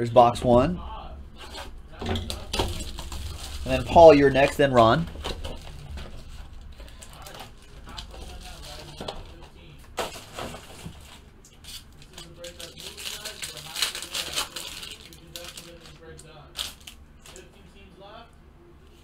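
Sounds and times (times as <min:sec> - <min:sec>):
foil wrapper crinkling and tearing: 0:01.4 - 0:17.5.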